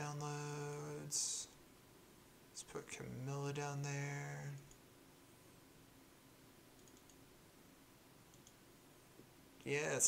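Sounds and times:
computer mouse clicks: 0:06.8 - 0:07.2, 0:08.3 - 0:08.6.

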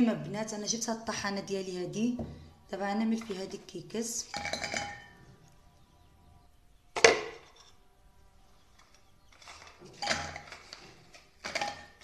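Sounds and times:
biscuits clinking against glass bowl: 0:04.2 - 0:05.2, 0:09.4 - 0:10.8.

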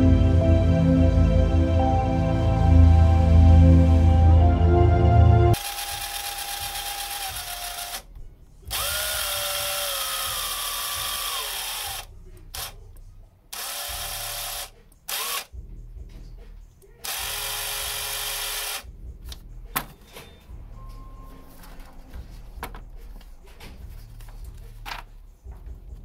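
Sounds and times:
impact wrench motor whine: 0:05.6 - 0:08.0, 0:08.7 - 0:12.7, 0:13.5 - 0:15.5, 0:17.0 - 0:18.8.

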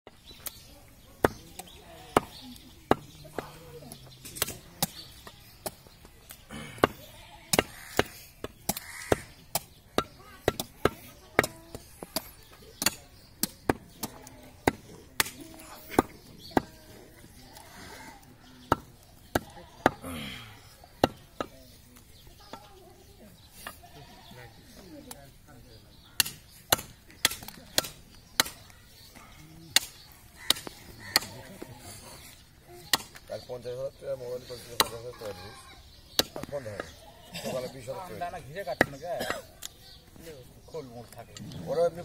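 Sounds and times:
cleaver chopping meat on wood: 0:01.2 - 0:03.6, 0:06.8 - 0:16.9, 0:18.6 - 0:20.0, 0:26.2 - 0:28.8, 0:29.7 - 0:31.5, 0:32.8 - 0:33.2.

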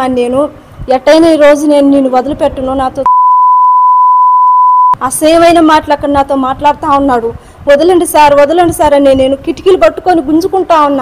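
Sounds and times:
censor bleep: 0:03.1 - 0:05.0.

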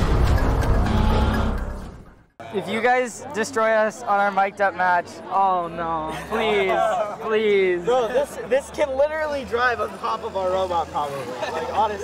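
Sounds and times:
impact hit: 0:00.0 - 0:02.2
intro music: 0:00.0 - 0:02.3.

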